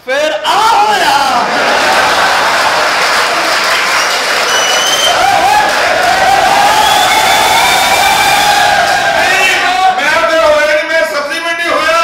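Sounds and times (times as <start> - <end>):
audience applauding: 1.4 - 10.3.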